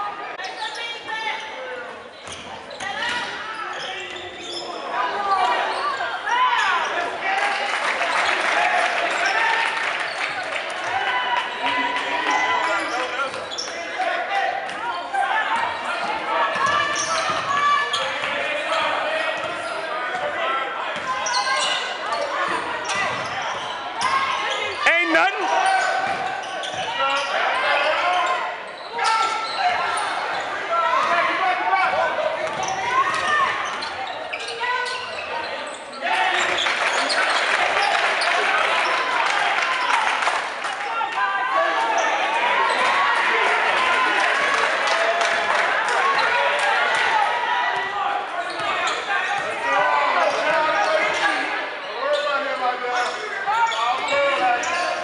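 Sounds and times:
people talking and calling out: 0.0s - 55.0s.

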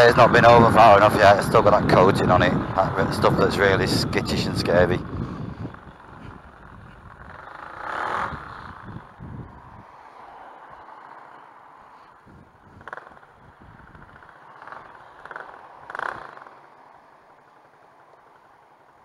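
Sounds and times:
wind noise: 0.0s - 10.9s, 12.1s - 14.9s
scooter engine rumble: 0.0s - 19.0s.

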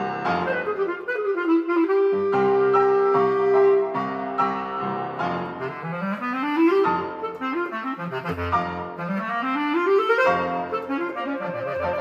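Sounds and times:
bass clarinet: 0.0s - 12.0s
piano chords: 0.0s - 12.0s.

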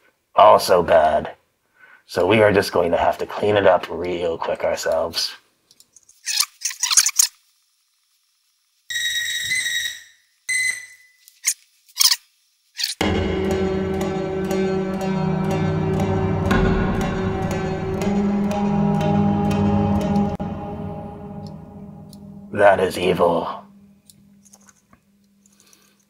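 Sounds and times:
mandolin snippets: 13.0s - 23.9s
plucked mandolin notes: 13.0s - 23.9s
low sustained drone tones: 13.0s - 24.4s.

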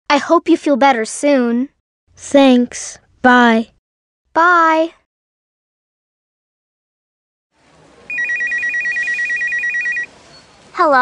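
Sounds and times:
electronic telephone ringing: 8.1s - 10.1s.

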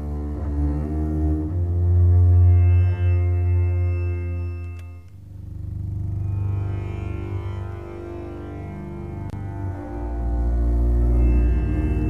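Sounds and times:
deep bowed string instrument notes: 0.0s - 12.0s.

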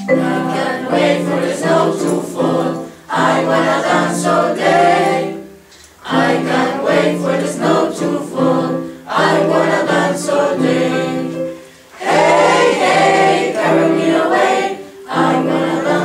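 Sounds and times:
group singing in chorus: 0.0s - 16.0s.

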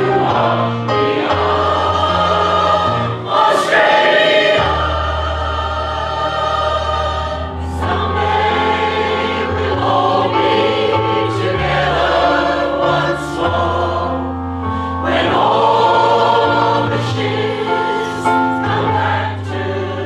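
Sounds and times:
choir singing in parts: 0.0s - 20.0s.

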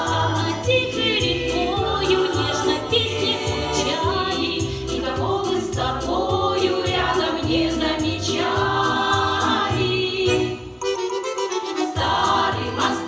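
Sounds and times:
women's choir singing: 0.0s - 10.7s, 11.9s - 13.0s.

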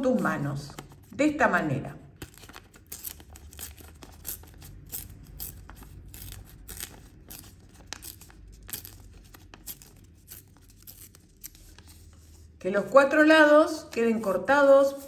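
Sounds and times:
paper crinkling: 2.2s - 12.5s.

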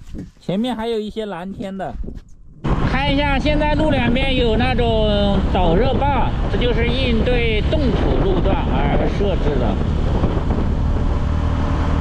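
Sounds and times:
wind and road noise: 0.0s - 12.0s
motorcycle engine hum: 2.0s - 12.0s.

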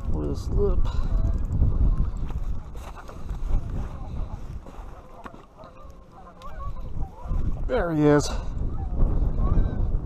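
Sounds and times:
wind buffeting microphone: 0.0s - 10.0s
faint wavering calls: 4.9s - 7.5s.

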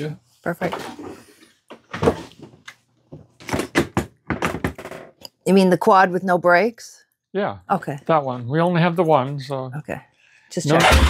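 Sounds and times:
sharp knocks and clatters: 1.7s - 5.2s.

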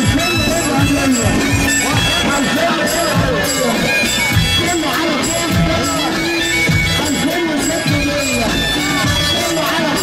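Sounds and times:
drum beats: 0.0s - 10.0s
reedy shawm melody: 0.0s - 10.0s.

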